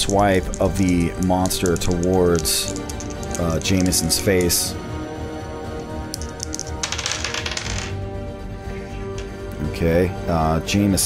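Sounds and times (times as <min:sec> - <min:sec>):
dice clicks: 0:00.0 - 0:04.6, 0:05.7 - 0:08.0, 0:09.1 - 0:09.4
dice rattling on table: 0:00.0 - 0:04.6, 0:06.1 - 0:08.0
soft background music: 0:00.0 - 0:11.0.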